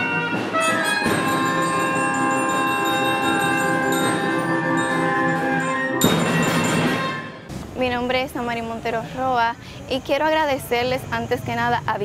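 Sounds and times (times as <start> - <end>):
small band playing held chord: 0.0 - 7.4.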